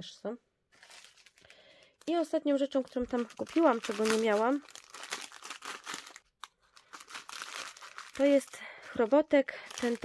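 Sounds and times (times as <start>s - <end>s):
plastic bag crinkling: 0.7s - 10.0s.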